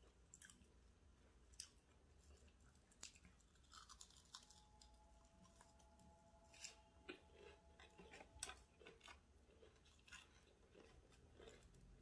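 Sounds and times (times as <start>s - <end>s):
chewing food: 1.5s - 5.8s, 6.6s - 12.0s
crisp crunches: 2.9s - 4.9s.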